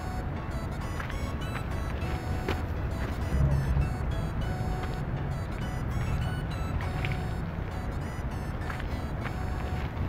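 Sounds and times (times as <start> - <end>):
background music with heavy bass: 0.0 - 10.0.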